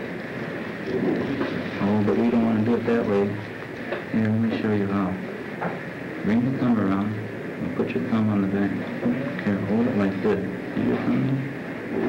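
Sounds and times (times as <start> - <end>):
old film soundtrack hiss and rumble: 0.0 - 12.0.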